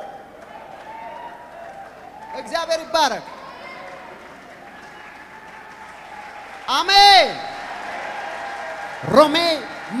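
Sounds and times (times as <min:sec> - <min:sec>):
congregation praying aloud: 0:02.3 - 0:10.0.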